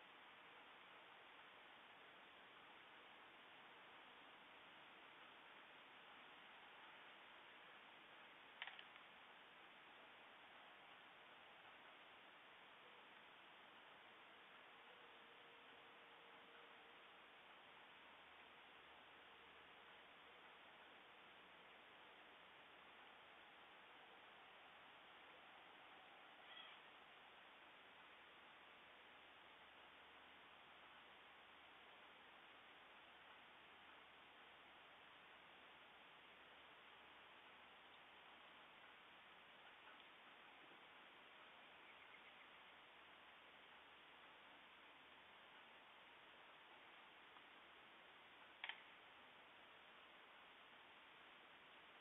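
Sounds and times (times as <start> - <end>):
faint steady hiss: 0.0 - 52.0
high-pitched animal call: 26.3 - 26.9.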